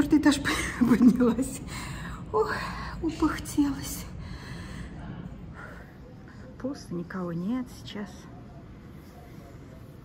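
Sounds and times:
woman breathing hard: 4.1 - 6.5.

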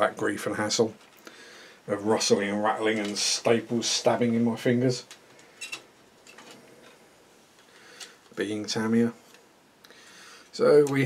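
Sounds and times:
plastic parts clicking and rubbing: 1.0 - 1.2, 2.8 - 3.4, 5.0 - 8.4.

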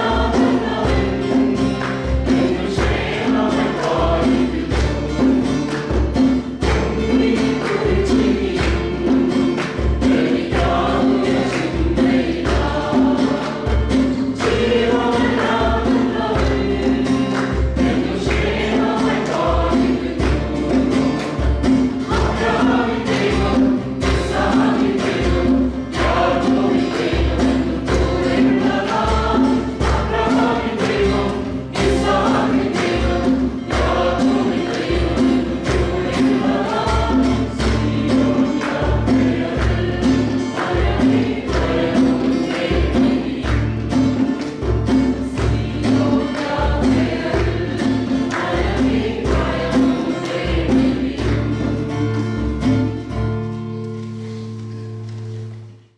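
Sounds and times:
women singing worship song: 0.0 - 5.4, 6.7 - 21.2, 22.0 - 44.0, 45.2 - 51.9
instrumental accompaniment with bass: 0.0 - 55.9.

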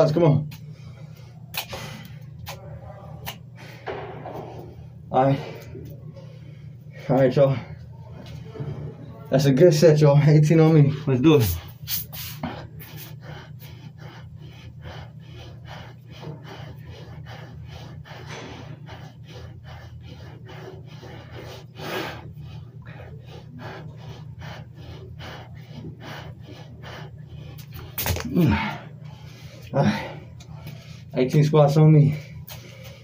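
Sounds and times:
steady low hum: 0.0 - 33.0
man panting and gasping: 10.5 - 33.0
man grunting breaths: 27.8 - 31.2.

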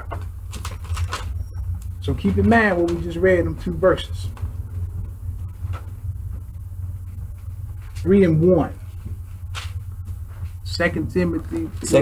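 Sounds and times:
low hum in room: 0.0 - 12.0.

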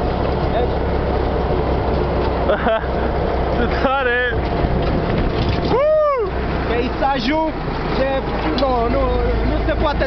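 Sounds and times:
truck engine rumbling: 0.0 - 10.0.

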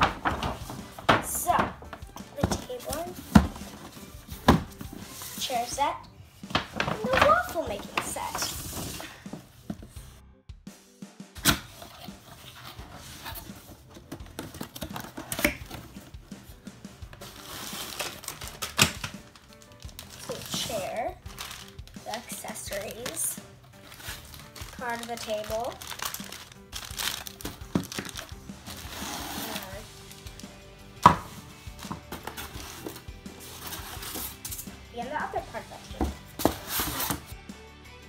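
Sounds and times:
cardboard box handled: 35.9 - 37.3.

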